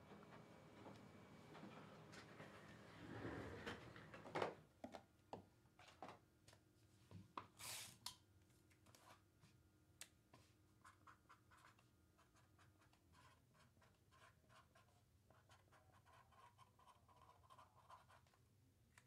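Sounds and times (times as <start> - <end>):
cards sliding and flipping: 7.6 - 8.0.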